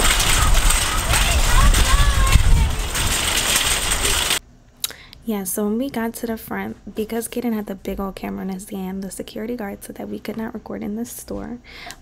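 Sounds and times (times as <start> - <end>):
shopping cart rattling on pavement: 0.0 - 4.4
wind noise on microphone: 0.0 - 4.4.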